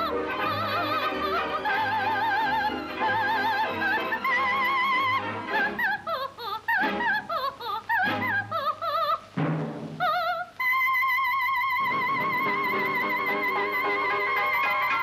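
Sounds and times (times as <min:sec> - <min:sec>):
orchestra: 0:00.0 - 0:05.9, 0:11.4 - 0:15.0
soprano singing with vibrato: 0:00.0 - 0:09.3, 0:10.0 - 0:15.0.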